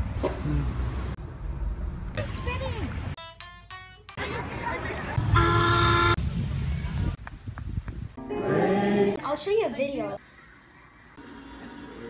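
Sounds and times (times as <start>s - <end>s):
boat horn toot: 5.2s - 6.2s.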